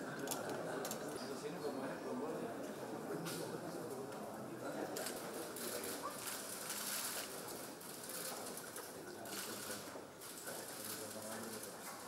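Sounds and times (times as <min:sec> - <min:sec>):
busy room background noise: 0:00.0 - 0:12.0
murmur of voices: 0:00.0 - 0:12.0.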